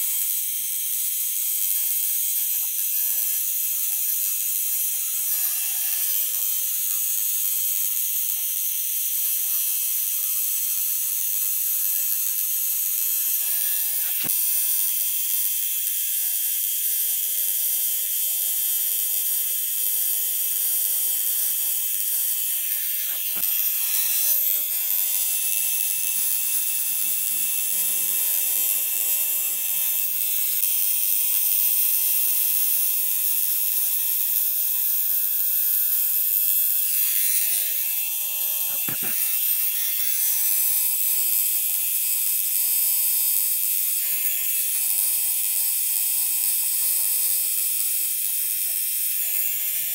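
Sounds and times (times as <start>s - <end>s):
tattoo machine buzzing: 0.0s - 49.9s.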